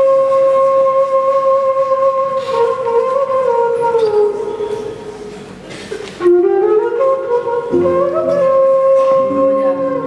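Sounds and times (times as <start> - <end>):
flute melody: 0.0 - 5.5, 6.2 - 10.0
low sustained accompaniment: 0.0 - 10.0.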